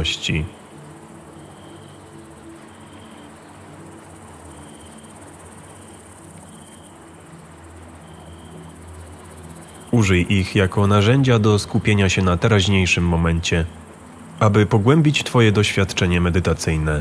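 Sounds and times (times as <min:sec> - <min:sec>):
ambient music drone: 0:00.0 - 0:17.0
crickets chirping: 0:00.0 - 0:17.0.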